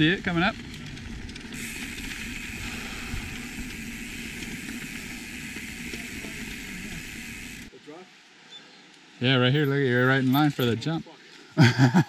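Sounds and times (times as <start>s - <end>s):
bike tyres rolling on dirt: 0.0s - 8.0s
wind rushing over microphone: 0.6s - 5.4s.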